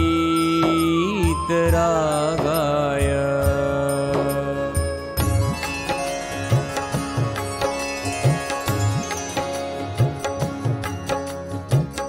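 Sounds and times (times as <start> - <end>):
steady held tones: 4.8 - 12.0.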